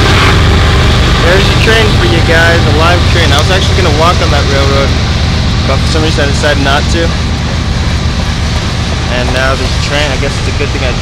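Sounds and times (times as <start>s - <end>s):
freight train rumbling on rails: 0.0s - 11.0s.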